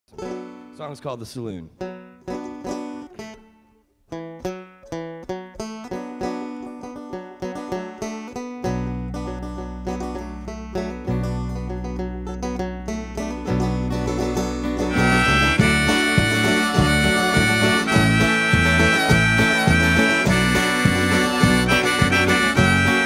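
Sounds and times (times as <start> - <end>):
acoustic guitar: 0.1 - 1.2, 1.8 - 23.0
banjo picking: 0.1 - 23.0
electric bass: 8.6 - 23.0.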